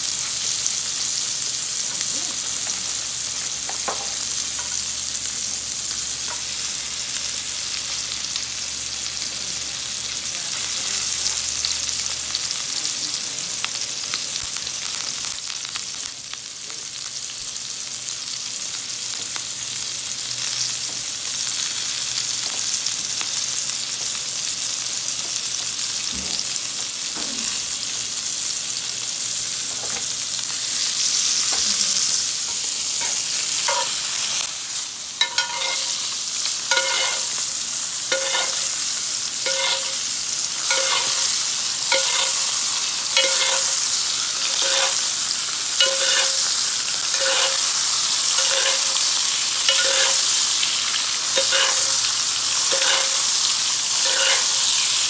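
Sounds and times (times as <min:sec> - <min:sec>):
steak sizzling in butter: 0:00.0 - 0:55.0
spoon clinking against pan: 0:35.2 - 0:35.9, 0:36.7 - 0:37.3, 0:38.1 - 0:38.6, 0:39.4 - 0:40.0, 0:40.7 - 0:41.3, 0:45.8 - 0:46.4, 0:49.7 - 0:50.2, 0:51.4 - 0:51.9, 0:52.7 - 0:53.2, 0:54.0 - 0:54.5.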